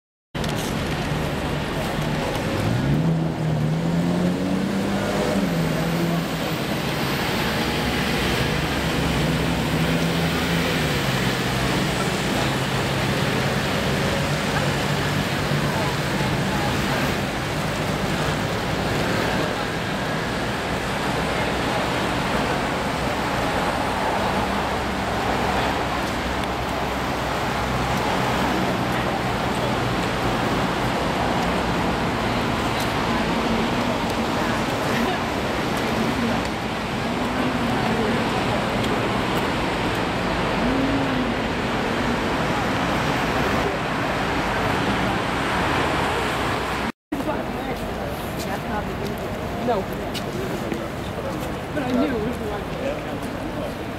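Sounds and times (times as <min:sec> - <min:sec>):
road traffic noise: 0:00.4 - 0:53.9.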